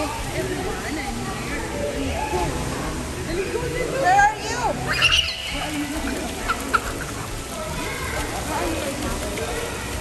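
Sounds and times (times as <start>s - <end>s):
fountain water jet splashing: 0.0s - 10.0s
high squeals of laughter: 4.9s - 5.7s.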